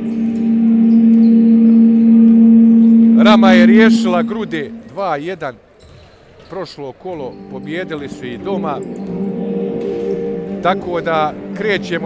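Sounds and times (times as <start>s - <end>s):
horn long steady note: 0.0s - 5.2s, 7.3s - 12.0s.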